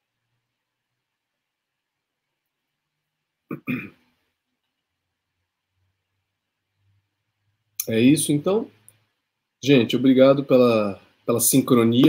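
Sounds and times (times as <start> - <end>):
man clearing his throat: 3.5 - 4.1.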